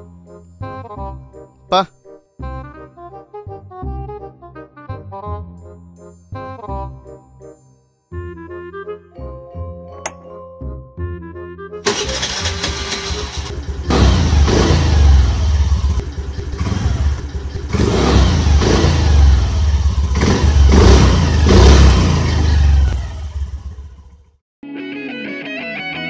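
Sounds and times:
motor scooter engine revving: 0:11.9 - 0:24.2.

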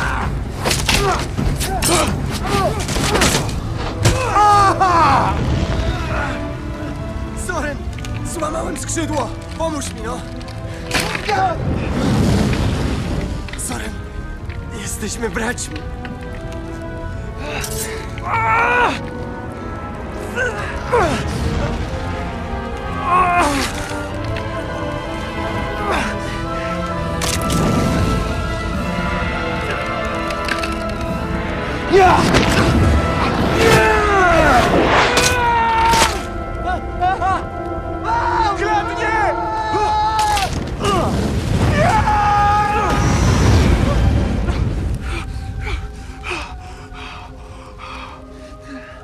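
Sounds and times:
film score music: 0:00.0 - 0:49.0.

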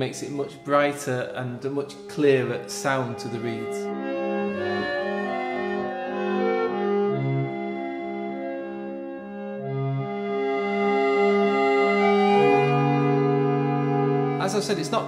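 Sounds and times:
harmonium held chords: 0:02.2 - 0:15.0.

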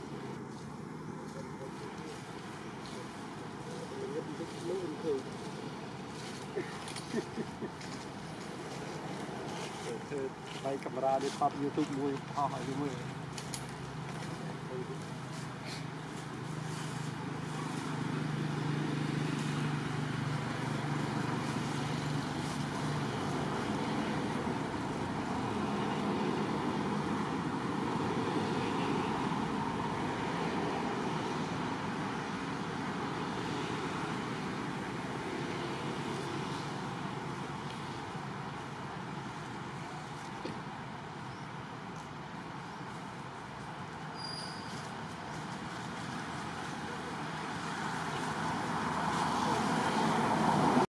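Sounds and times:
distant traffic rumble: 0:00.0 - 0:50.9.

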